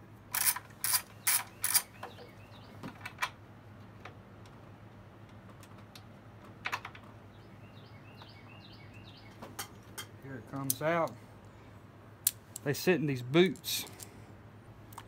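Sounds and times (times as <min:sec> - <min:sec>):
hand tools clicking on metal: 0:00.4 - 0:02.1.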